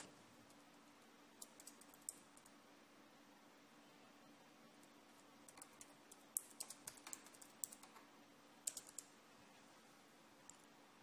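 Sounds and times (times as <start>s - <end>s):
faint keyboard typing: 1.3s - 2.6s, 4.8s - 9.2s.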